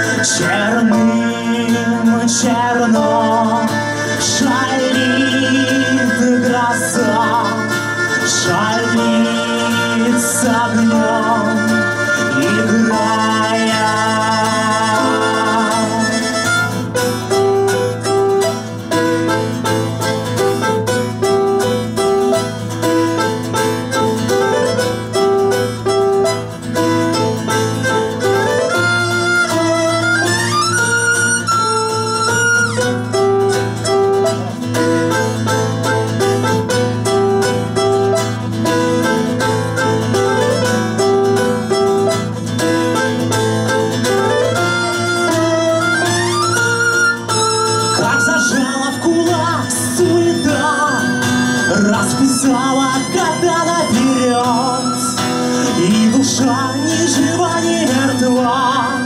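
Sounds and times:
strummed acoustic guitars: 0.0s - 59.0s
violin melody: 0.0s - 59.0s.

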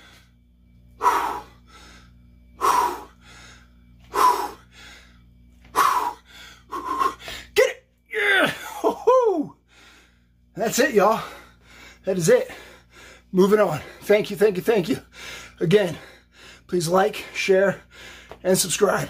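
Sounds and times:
man exhaling forcefully: 1.0s - 2.0s, 2.6s - 3.5s
man groaning with effort: 7.6s - 9.6s.

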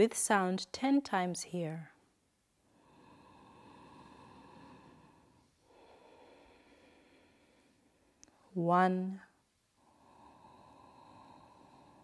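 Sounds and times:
woman breathing slowly: 2.6s - 8.6s, 9.7s - 12.0s.

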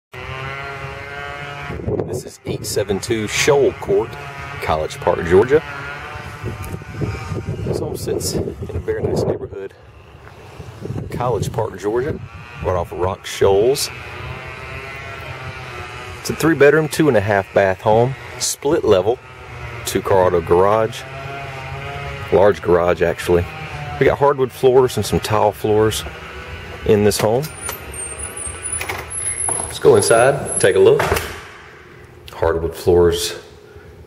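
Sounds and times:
engine droning steadily: 0.2s - 34.0s
motor humming: 3.4s - 8.8s, 26.0s - 32.2s
man's voice: 29.7s - 31.2s.

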